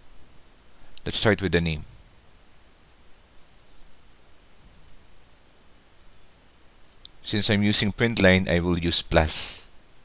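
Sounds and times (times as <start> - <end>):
steady low hiss: 0.0 - 10.0
faint keyboard keystrokes: 3.7 - 5.6.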